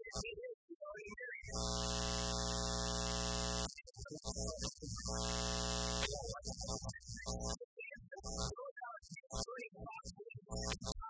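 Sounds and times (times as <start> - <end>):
loud electrical buzz: 1.5 - 7.6, 8.2 - 8.6, 10.5 - 11.0.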